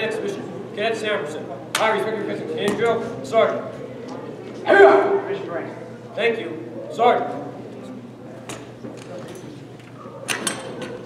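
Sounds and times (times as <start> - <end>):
low murmur of voices: 0.0 - 11.0.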